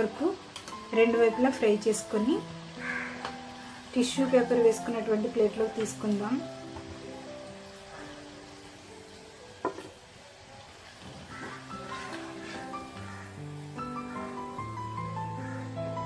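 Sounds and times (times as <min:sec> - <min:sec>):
background music: 0:00.0 - 0:16.0
food sizzling in hot oil: 0:00.0 - 0:16.0.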